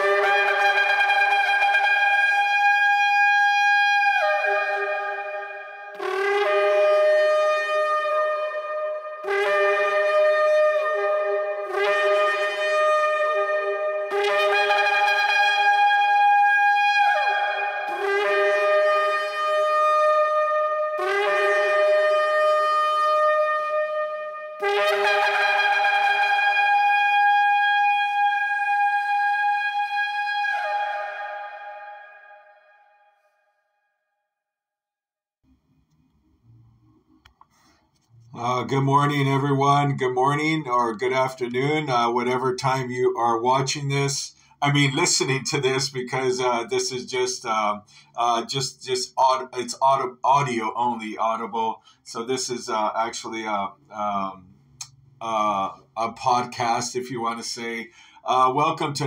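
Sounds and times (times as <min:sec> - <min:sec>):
shofar blast: 0:00.0 - 0:33.2.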